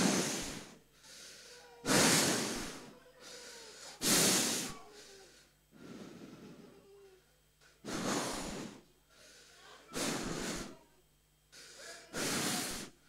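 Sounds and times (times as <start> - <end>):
breaths blown into microphone: 1.8 - 2.9, 4.0 - 4.8, 7.8 - 8.8, 10.0 - 10.8, 11.6 - 13.0.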